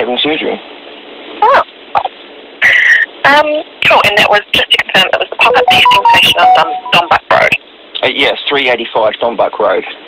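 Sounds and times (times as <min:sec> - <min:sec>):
voices over a telephone call: 0:01.4 - 0:10.0
telephone line hiss: 0:05.4 - 0:07.6.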